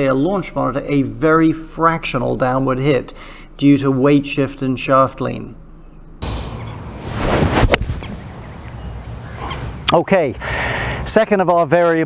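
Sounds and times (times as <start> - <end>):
outdoor wind noise: 0.0 - 12.0
golf club whoosh: 6.2 - 8.4.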